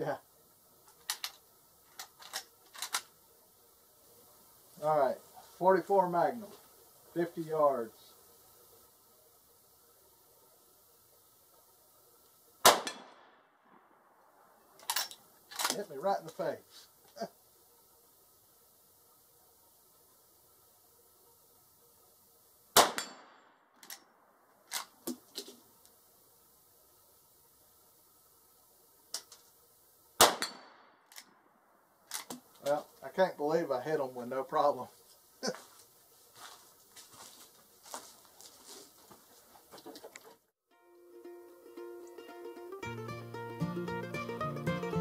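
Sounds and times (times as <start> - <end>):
rifle gunshot: 12.6 - 13.4, 22.8 - 23.5, 30.2 - 30.9.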